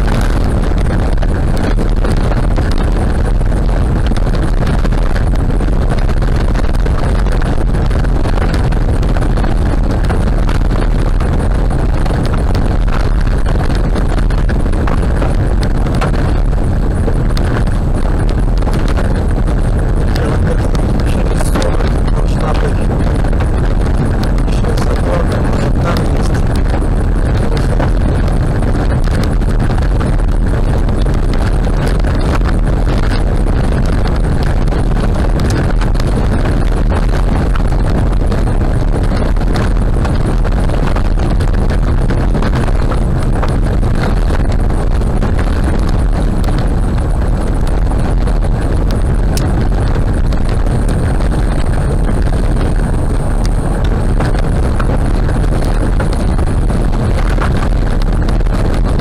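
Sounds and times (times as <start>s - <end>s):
tyres rumbling on gravel: 20.0s - 29.4s.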